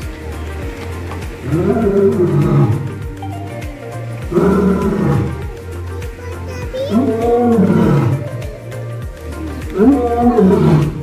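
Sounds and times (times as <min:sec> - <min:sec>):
background music with steady beat: 0:00.0 - 0:11.0
big cat roaring: 0:01.4 - 0:03.0, 0:04.3 - 0:05.6, 0:06.9 - 0:08.5, 0:09.7 - 0:11.0.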